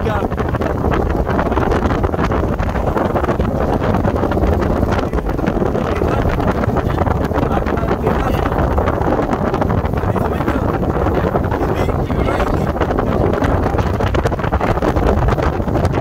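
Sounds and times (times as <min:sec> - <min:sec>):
water slapping against hull: 0:00.0 - 0:16.0
wind buffeting microphone: 0:00.0 - 0:16.0.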